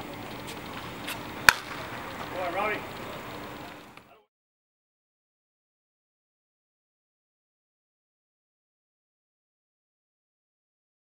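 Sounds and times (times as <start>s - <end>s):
baseball smacking into mitt: 1.5s - 1.8s.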